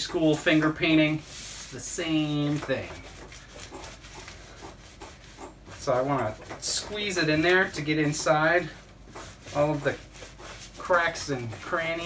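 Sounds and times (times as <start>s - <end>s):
wet rubbing and squishing: 0.0s - 12.0s.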